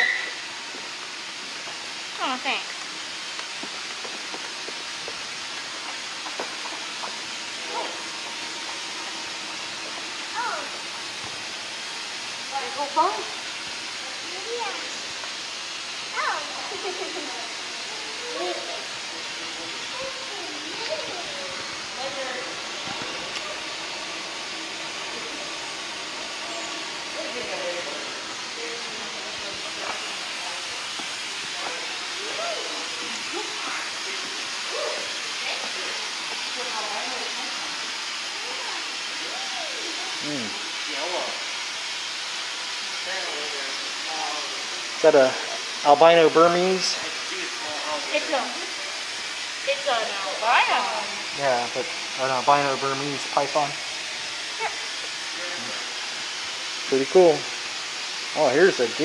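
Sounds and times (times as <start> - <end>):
steady hiss: 0.0 - 59.0
people talking: 2.2 - 2.6, 19.6 - 22.6, 31.5 - 36.0, 38.4 - 41.4, 43.1 - 48.7, 49.7 - 53.8, 56.9 - 57.4, 58.4 - 59.0.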